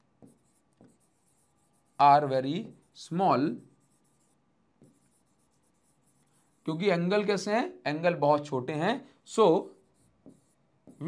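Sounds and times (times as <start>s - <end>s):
pen tapping on display board: 10.2s - 11.0s.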